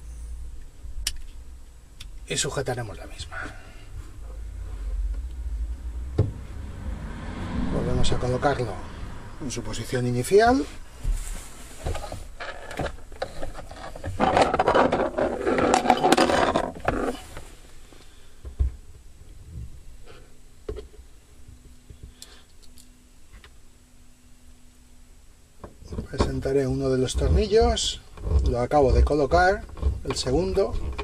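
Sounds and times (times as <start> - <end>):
plastic rustling and scraping: 10.6 - 17.6.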